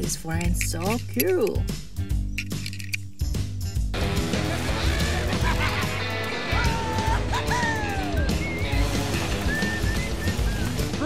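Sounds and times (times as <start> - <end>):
dense soundtrack music: 0.0 - 11.0.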